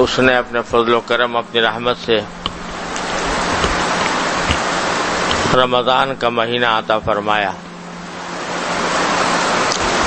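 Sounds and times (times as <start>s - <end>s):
loud rushing hiss: 0.0s - 10.0s.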